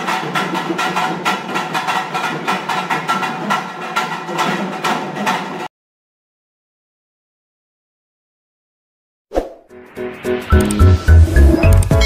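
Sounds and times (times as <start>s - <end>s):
heavy bass beats: 10.5s - 12.0s.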